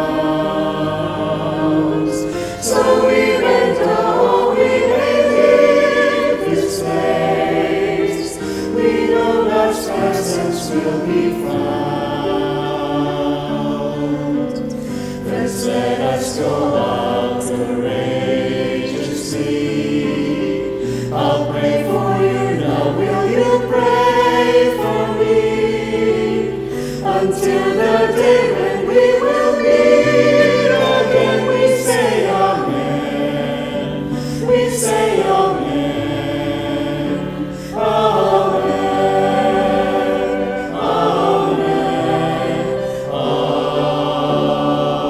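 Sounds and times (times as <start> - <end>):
choir singing in harmony: 0.0 - 45.0.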